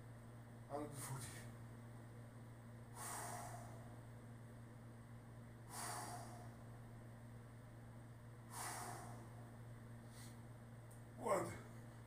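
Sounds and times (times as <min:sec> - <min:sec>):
low steady hum: 0:00.0 - 0:12.0
man exhaling forcefully: 0:02.9 - 0:04.0, 0:05.6 - 0:06.7, 0:08.5 - 0:09.5.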